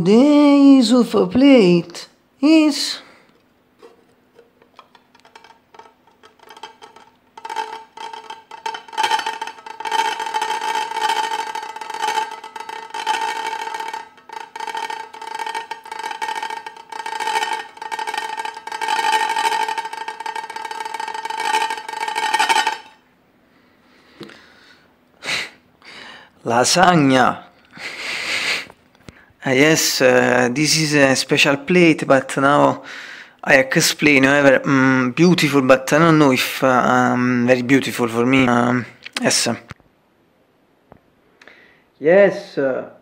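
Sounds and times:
ceramic plate grating and ringing: 3.8s - 23.0s.

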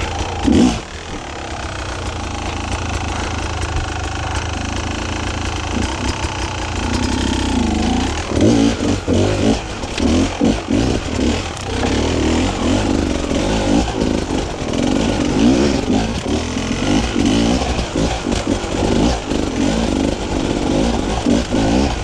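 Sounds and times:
motorcycle engine revving: 0.0s - 22.0s.

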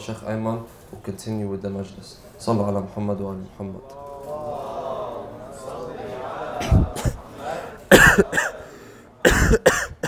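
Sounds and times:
man coughing: 7.9s - 10.0s.

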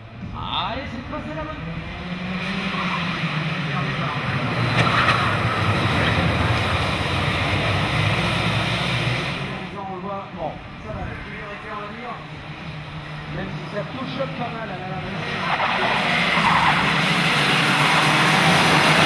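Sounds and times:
racing karts engines buzzing: 0.0s - 9.8s, 10.6s - 19.0s.

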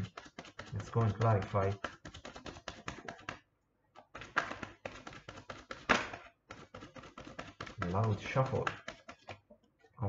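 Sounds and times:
cards shuffling by hand: 0.0s - 9.6s.

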